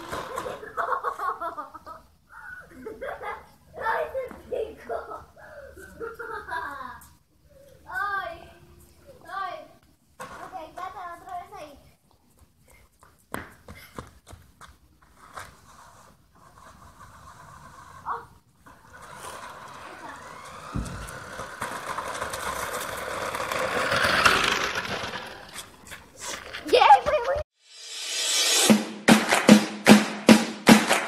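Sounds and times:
rc car motor whine: 16.6 - 25.8.

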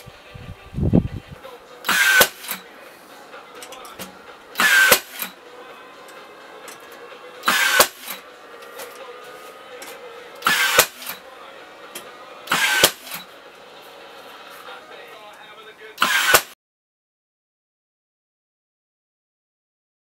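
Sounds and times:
small motor whirring: 1.9 - 2.6, 4.6 - 5.4, 7.4 - 9.1, 10.4 - 11.2, 12.5 - 14.4, 16.0 - 16.5
sharp click: 10.4 - 11.2, 16.0 - 16.6.

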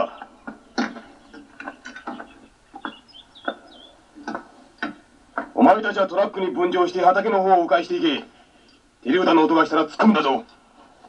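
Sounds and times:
faint high bird chirps: 0.0 - 4.0
light knocks and clicks: 0.2 - 3.6, 4.2 - 5.6.

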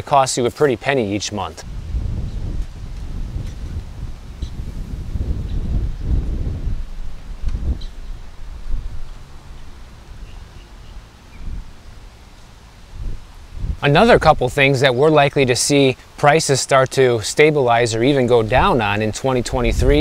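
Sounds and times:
wind buffeting microphone: 1.6 - 15.5, 17.9 - 20.0.

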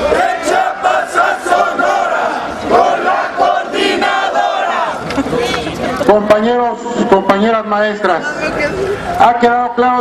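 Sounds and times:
crowd shouting: 0.0 - 5.5.

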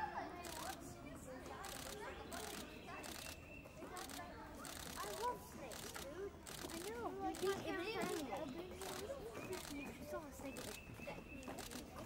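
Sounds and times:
children chattering: 0.0 - 12.0
camera shutter clicking: 1.6 - 3.4, 4.0 - 7.6.

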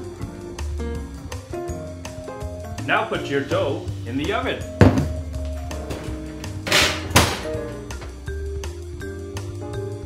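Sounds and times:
background music: 0.0 - 10.0
oven door thunk: 5.8 - 8.2.

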